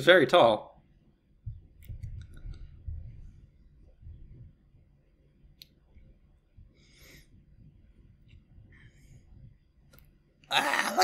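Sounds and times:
low bumps: 1.4 - 4.8.

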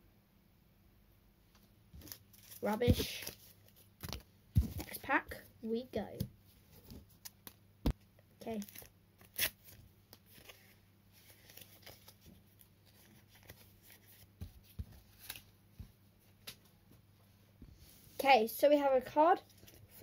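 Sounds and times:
rustles and snaps of paper: 2.0 - 5.0.

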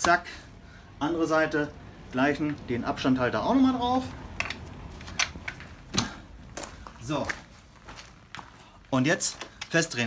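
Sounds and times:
metallic clicks and knocks of tools: 4.4 - 6.2.

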